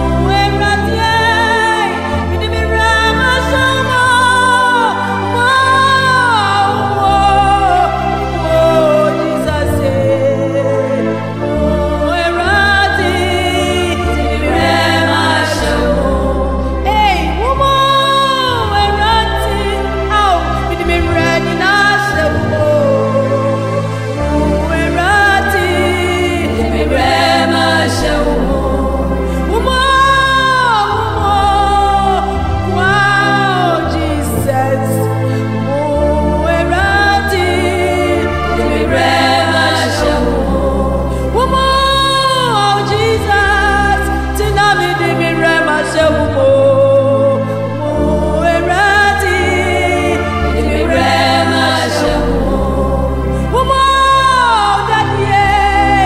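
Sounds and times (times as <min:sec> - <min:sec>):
steady bass accompaniment: 0:00.0 - 0:56.0
voices singing gospel: 0:00.0 - 0:56.0.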